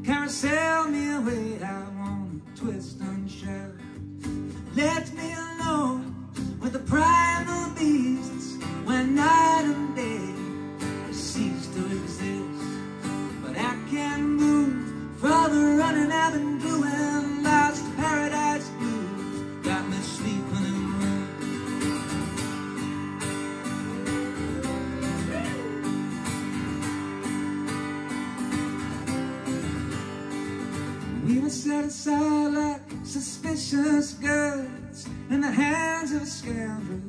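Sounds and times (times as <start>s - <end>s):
man singing: 0.0s - 21.8s, 22.9s - 26.2s, 31.2s - 37.0s
acoustic guitar strumming: 0.0s - 37.0s.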